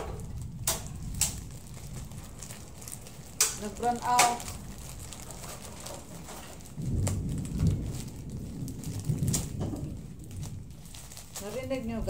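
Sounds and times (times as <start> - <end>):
thunder rumbling: 0.0 - 12.0.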